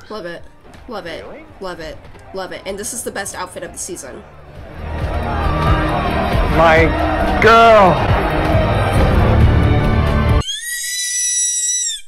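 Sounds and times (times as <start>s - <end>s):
tv show music and dialogue: 0.0s - 10.4s
woman squealing with excitement: 10.4s - 12.0s.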